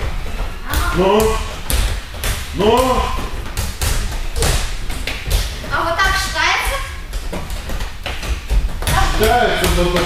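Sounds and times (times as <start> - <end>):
balls thudding on mats: 0.0 - 10.0.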